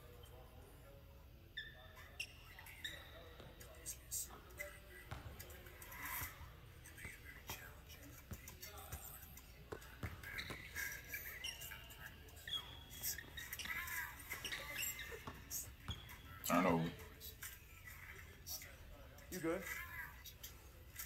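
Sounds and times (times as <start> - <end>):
sneakers squeaking: 1.5 - 21.0
basketball dribbling on hardwood: 5.1 - 5.4, 9.7 - 10.7.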